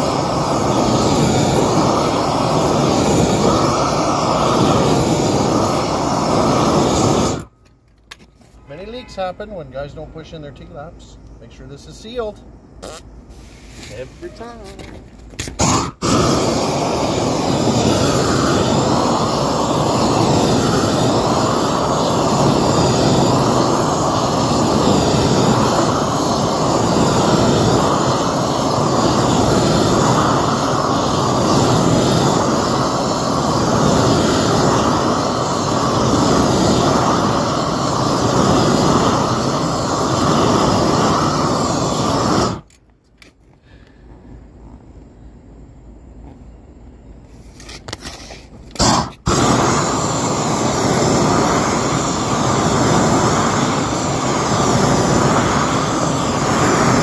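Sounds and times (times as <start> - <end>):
roofing torch roaring: 0.0 - 7.6, 8.5 - 42.8, 48.6 - 57.0.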